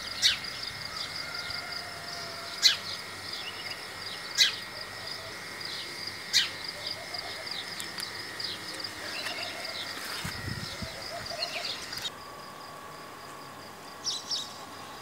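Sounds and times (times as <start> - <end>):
small birds chirping: 2.6 - 12.1
sharp bird calls: 6.2 - 12.1.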